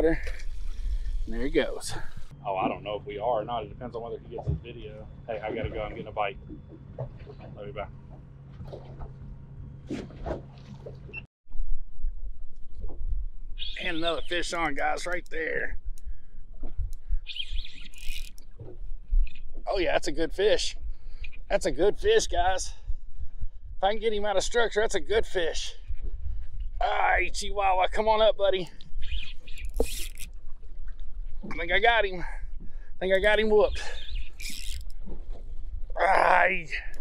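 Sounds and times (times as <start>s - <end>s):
wind rumble on microphone: 0.0s - 25.1s, 25.7s - 37.0s
fishing reel drag buzzing: 17.4s - 18.6s, 29.2s - 30.4s, 34.0s - 35.0s
wind buffeting microphone: 22.2s - 24.6s, 25.7s - 26.8s.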